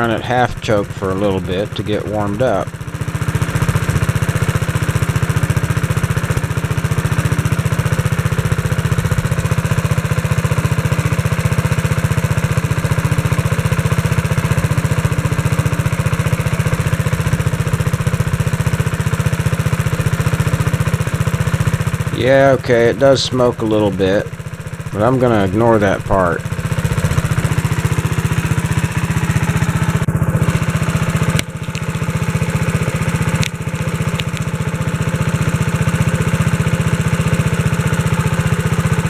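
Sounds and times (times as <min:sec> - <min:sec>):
garden tractor engine running: 0:00.0 - 0:39.0.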